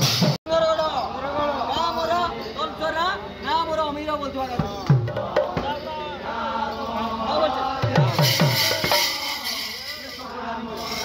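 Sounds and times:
voices: 0.0s - 11.0s
high metallic shimmer: 8.3s - 11.0s.

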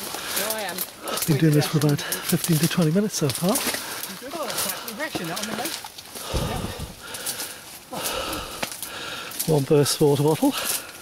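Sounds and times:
twigs and leaves crackling underfoot: 0.0s - 11.0s
people talking: 0.4s - 6.9s.

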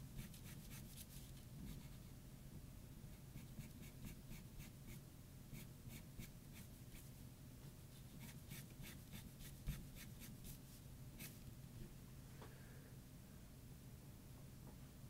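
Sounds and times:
pencil scratching on paper: 0.2s - 2.0s, 3.4s - 5.0s, 8.1s - 10.6s.

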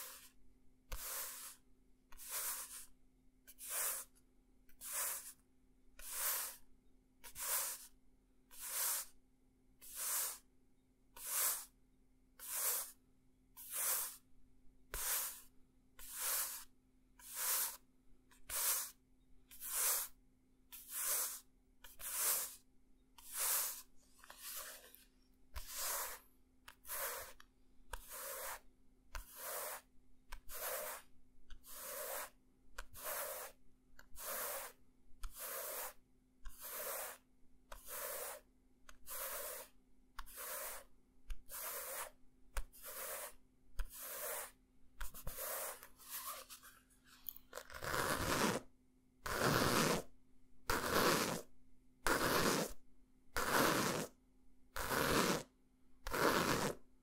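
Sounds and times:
fingers rubbing book cover: 0.0s - 1.6s, 2.2s - 2.9s, 3.6s - 4.2s, 4.8s - 5.4s, 6.0s - 6.6s, 7.3s - 7.9s, 8.5s - 9.2s, 9.8s - 10.4s, 12.4s - 13.0s, 13.6s - 14.2s, 14.9s - 17.8s, 18.4s - 22.6s, 23.2s - 46.7s, 47.6s - 50.1s, 50.7s - 51.5s, 52.1s - 52.8s, 53.4s - 54.2s, 54.8s - 55.5s, 56.1s - 56.8s
scratching book cover: 0.9s - 1.6s, 2.2s - 2.9s, 3.6s - 4.1s, 4.8s - 5.4s, 7.3s - 7.9s, 9.8s - 10.4s, 12.4s - 13.0s, 14.9s - 17.8s, 18.4s - 22.6s, 23.2s - 27.4s, 28.0s - 28.6s, 29.2s - 37.2s, 37.8s - 46.8s, 47.5s - 48.7s, 49.3s - 50.1s, 50.7s - 51.5s, 52.1s - 52.8s, 53.4s - 54.2s, 54.8s - 55.5s, 56.1s - 56.8s.

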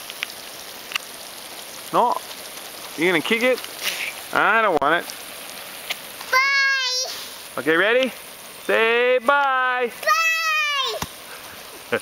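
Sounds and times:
water spraying from sprinklers: 0.0s - 12.0s.

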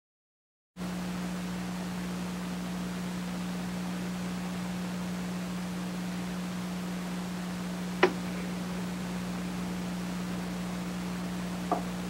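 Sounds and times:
low electrical hum: 0.8s - 12.0s
tape hiss: 0.8s - 12.0s.

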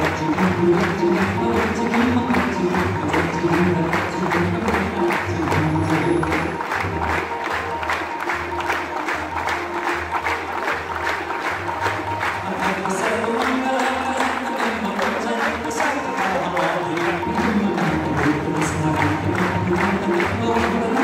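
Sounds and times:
hands clapping: 0.0s - 21.0s.

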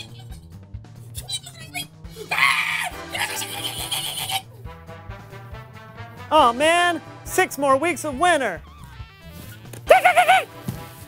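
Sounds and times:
person screaming: 2.2s - 4.4s.

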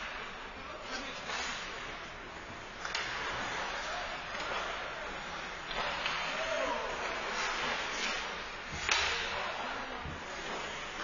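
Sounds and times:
hockey stick or puck crack: 7.3s - 9.4s.

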